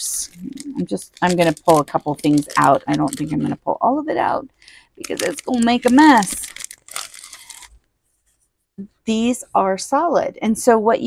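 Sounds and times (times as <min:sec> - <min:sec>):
plastic packaging crinkling: 0:00.1 - 0:03.6, 0:04.2 - 0:07.9.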